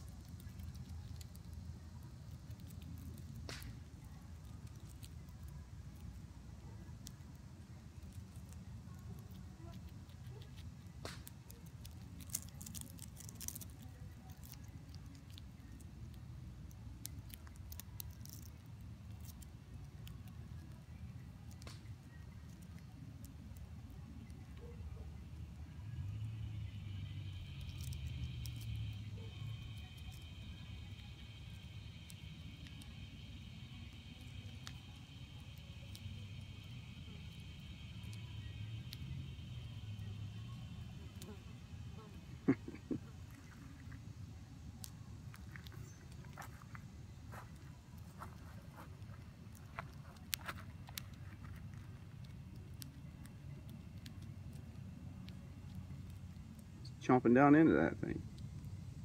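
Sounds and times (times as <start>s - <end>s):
distant cicadas droning: 24.0s - 59.0s.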